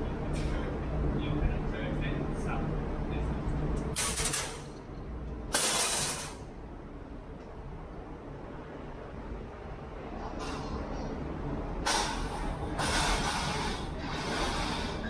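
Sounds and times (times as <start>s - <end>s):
ferry engines rumbling: 0.0s - 15.0s.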